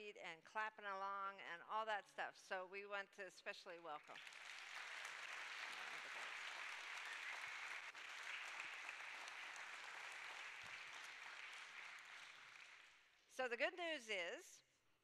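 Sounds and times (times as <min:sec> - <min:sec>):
congregation applauding: 0:04.0 - 0:13.2.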